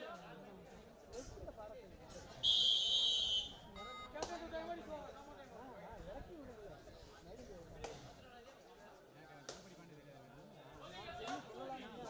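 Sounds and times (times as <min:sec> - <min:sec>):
chatter of people: 0:00.0 - 0:12.0
referee's whistle blast: 0:02.4 - 0:04.0.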